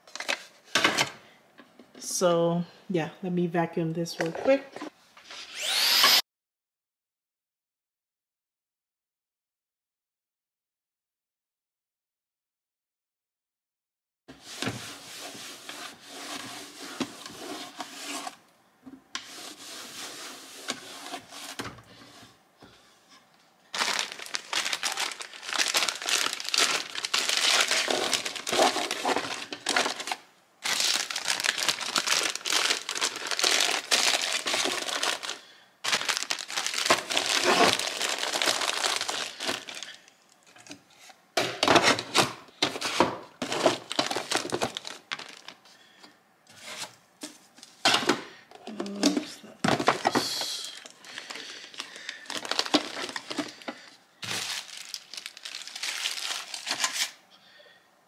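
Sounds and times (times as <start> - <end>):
plastic bags crinkling: 23.7 - 40.5, 42.7 - 45.7, 49.6 - 57.2.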